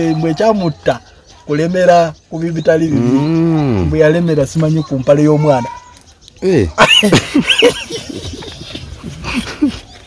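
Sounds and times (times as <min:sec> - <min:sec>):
man laughing: 0:06.7 - 0:10.0.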